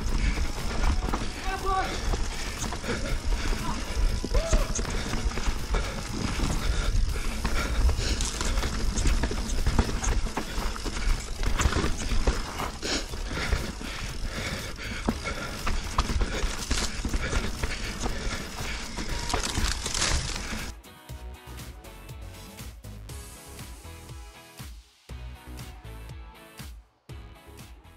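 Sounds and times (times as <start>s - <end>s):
bike knocking and rattling: 0.0s - 20.7s
bike tyres rumbling on dirt: 0.0s - 20.7s
background music with steady beat: 20.7s - 27.9s.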